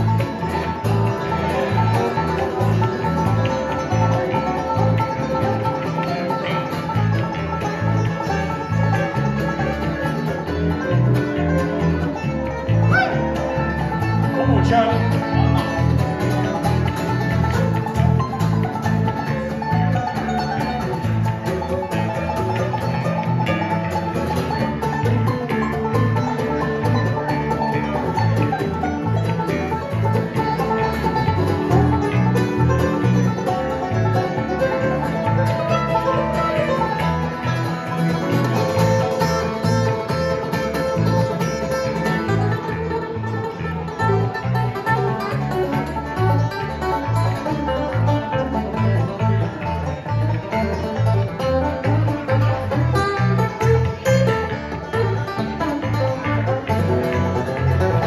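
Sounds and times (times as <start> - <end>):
banjo picking fast: 0.0 - 58.0
electric bass line: 0.0 - 58.0
strummed acoustic guitar: 0.0 - 58.0.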